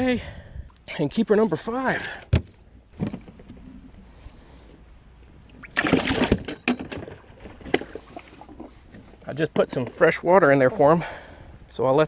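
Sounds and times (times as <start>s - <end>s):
water splash: 5.5s - 6.6s.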